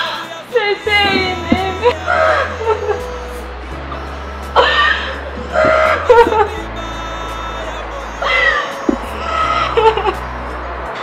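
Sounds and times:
background music with low bass: 0.0s - 11.0s
woman sobbing: 0.1s - 3.4s, 4.6s - 6.6s, 9.3s - 10.2s.

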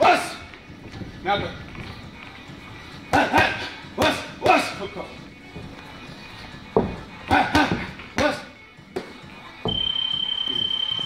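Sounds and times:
high-pitched beep: 9.7s - 11.0s.

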